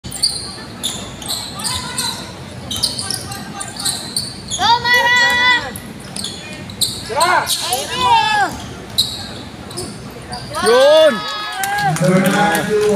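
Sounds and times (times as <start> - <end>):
sneakers squeaking: 0.1 - 10.8
people shouting: 10.5 - 11.9.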